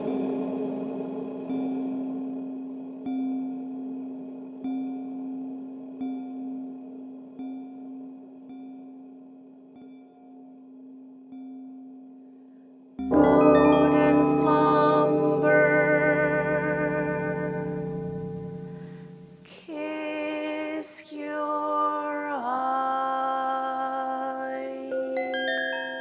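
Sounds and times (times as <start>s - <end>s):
electronic bell tones: 13.1s - 17.0s, 24.9s - 26.0s.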